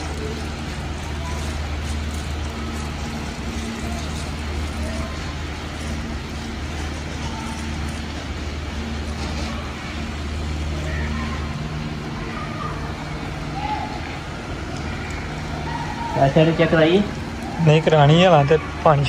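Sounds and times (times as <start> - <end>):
hose spraying water on plants: 0.0 - 19.0
low mechanical hum: 0.0 - 19.0.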